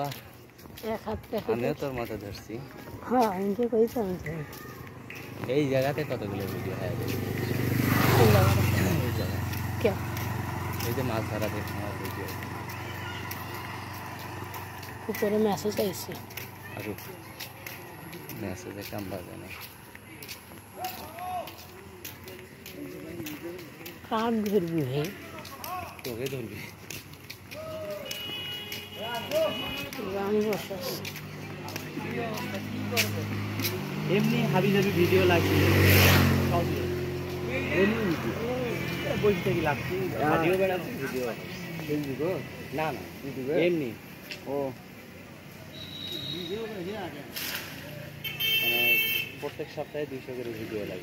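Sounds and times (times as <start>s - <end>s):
vehicle passing on road: 0.0s - 51.0s
motorcycle engine humming: 3.2s - 22.3s.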